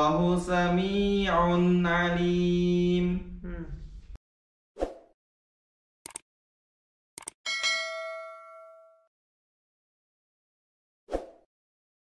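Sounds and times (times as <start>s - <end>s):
short clicks: 6.0s - 6.2s, 7.2s - 7.4s
bright bell ding: 7.5s - 9.1s.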